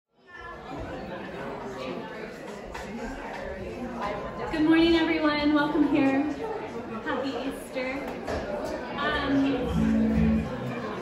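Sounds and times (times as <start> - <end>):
many people chatting: 0.1 - 11.0.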